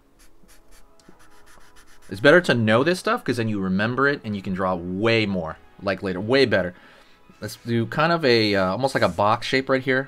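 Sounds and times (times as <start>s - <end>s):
marker strokes on paper: 0.2s - 2.3s.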